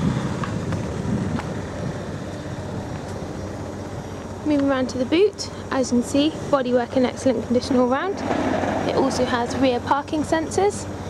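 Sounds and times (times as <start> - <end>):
wind on microphone: 0.0 - 3.5
low outdoor rumble: 0.0 - 11.0.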